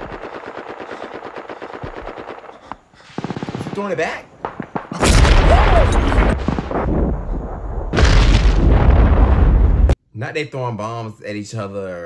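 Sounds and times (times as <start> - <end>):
machine gun firing: 0.0 - 5.6.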